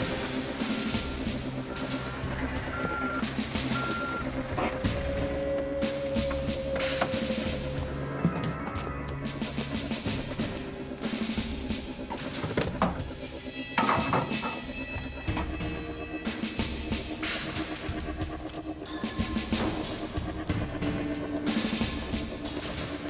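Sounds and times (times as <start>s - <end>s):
drums beating a rhythm: 0.0s - 23.0s.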